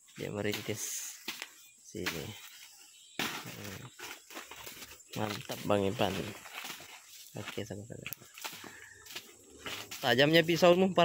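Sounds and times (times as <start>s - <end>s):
leaves and stems rustling: 0.1s - 11.0s.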